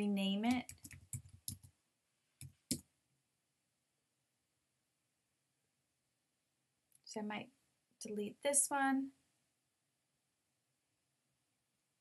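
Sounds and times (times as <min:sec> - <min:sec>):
computer keyboard keystrokes: 0:00.5 - 0:01.7.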